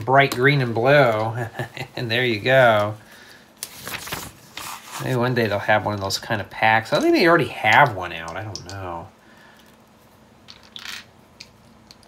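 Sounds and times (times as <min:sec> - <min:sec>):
hands rustling paper: 0:00.5 - 0:05.4.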